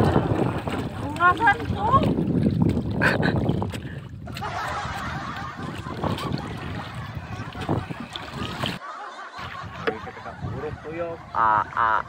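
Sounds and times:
wind noise: 0.0 - 8.8, 9.4 - 12.0
wooden paddle knocks and splashes: 0.0 - 8.8, 9.8 - 10.1
water sloshing: 0.0 - 12.0.

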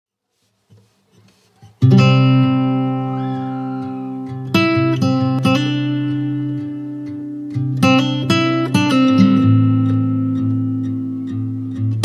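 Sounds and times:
guitar chord ringing: 1.8 - 12.0.

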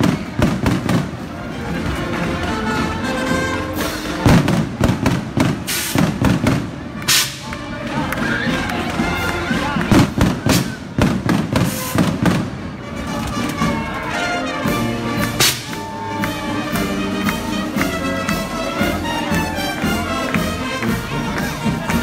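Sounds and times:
band music: 0.0 - 22.0
firecrackers banging: 0.0 - 22.0.

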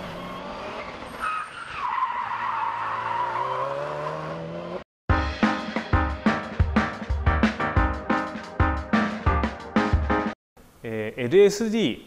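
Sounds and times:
car engine accelerating: 0.0 - 1.2, 2.9 - 4.9.

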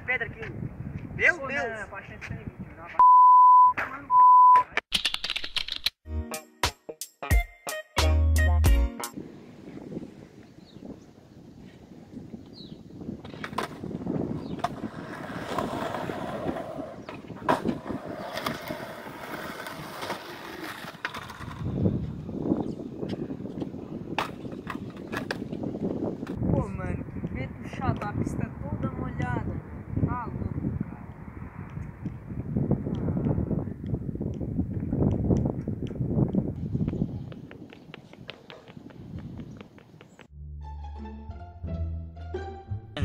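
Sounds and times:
wind rumbling on microphone: 0.0 - 3.0, 9.1 - 40.3
censor bleep: 3.0 - 4.7
skateboard knocks and scuffs: 13.2 - 22.2, 23.1 - 26.4, 34.7 - 40.3.

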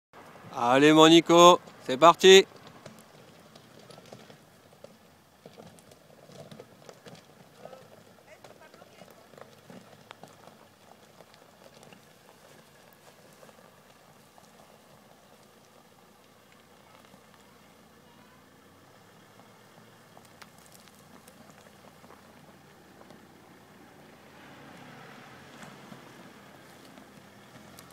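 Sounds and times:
diesel car engine humming: 0.2 - 27.9
faint distant voices: 16.5 - 19.9.

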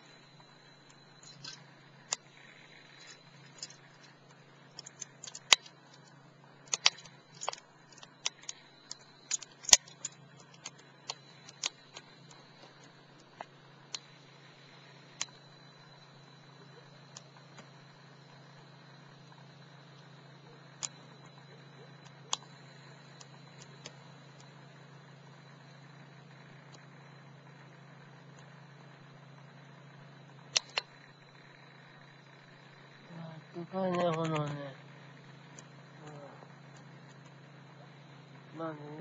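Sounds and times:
wood fire crackling and popping: 0.8 - 15.5.

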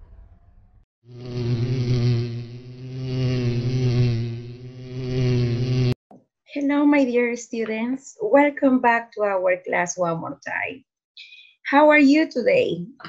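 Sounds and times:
bee buzzing: 1.1 - 6.0.

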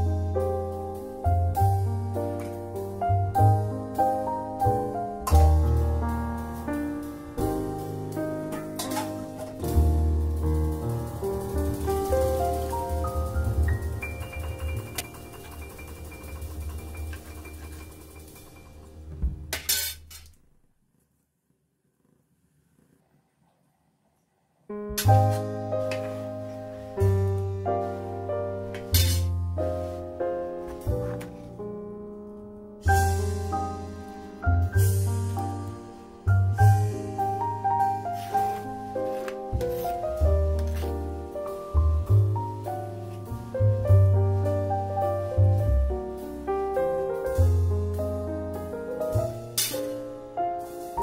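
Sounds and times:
soft background music: 0.0 - 19.5, 24.9 - 51.0
low bass line: 9.6 - 15.0, 32.9 - 38.0, 39.6 - 49.5
ringing melody: 13.7 - 19.0.

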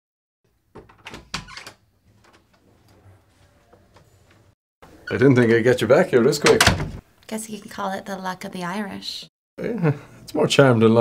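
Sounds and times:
door lock clicks and knocks: 6.5 - 7.0.

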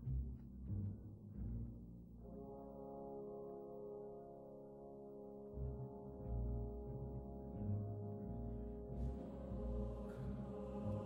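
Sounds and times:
soft orchestral chord: 0.0 - 11.0.

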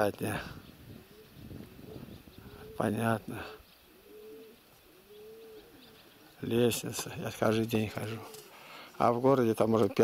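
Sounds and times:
pigeons cooing: 0.0 - 9.5.

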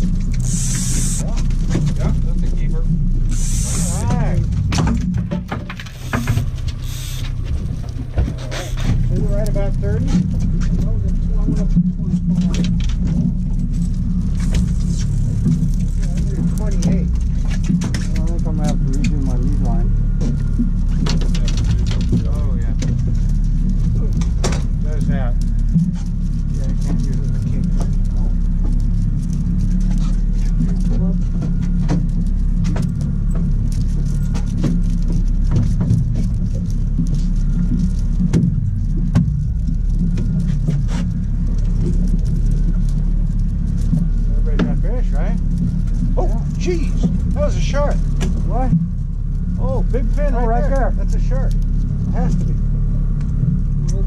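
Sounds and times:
low voices: 0.0 - 38.5, 39.5 - 54.0
fishing gear clicking and rattling: 0.0 - 54.0
outboard motor running: 0.0 - 54.0.

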